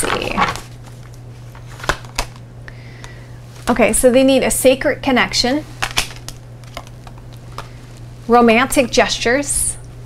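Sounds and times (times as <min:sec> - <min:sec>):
cards being shuffled: 0:00.0 - 0:02.5, 0:05.7 - 0:08.1
sharp card snaps: 0:05.8 - 0:07.7.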